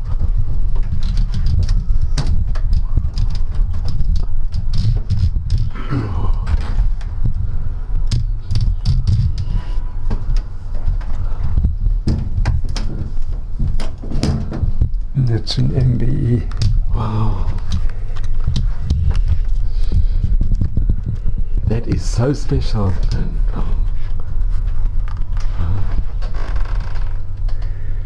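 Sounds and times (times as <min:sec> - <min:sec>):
low rumble: 0:00.0 - 0:28.0.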